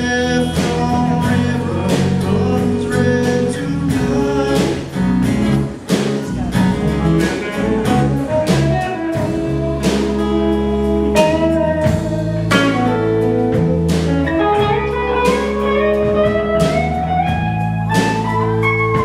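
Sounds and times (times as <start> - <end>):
bass guitar: 0.0 - 19.0
bending guitar melody: 0.0 - 19.0
drum kit beat: 0.0 - 19.0
strummed acoustic guitar: 0.0 - 19.0.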